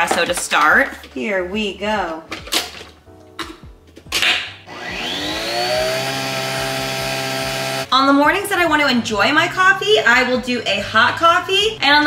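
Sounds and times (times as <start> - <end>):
coffee machine motor whine: 4.7 - 7.9.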